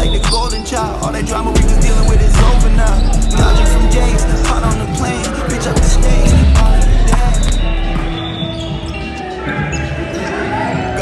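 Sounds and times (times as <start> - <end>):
background music with deep bass: 0.0 - 11.0.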